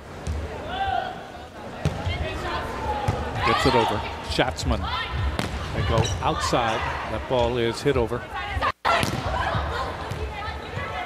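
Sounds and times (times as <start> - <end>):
arena crowd calling out: 2.1 - 11.0.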